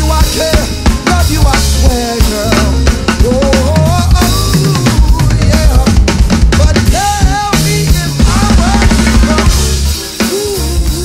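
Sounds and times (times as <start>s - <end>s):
backing track with bass line: 0.0s - 11.0s
drum kit playing: 0.0s - 11.0s.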